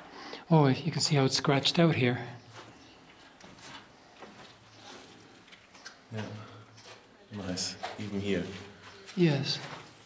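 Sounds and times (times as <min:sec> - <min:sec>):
soft rustles: 0:02.4 - 0:07.1.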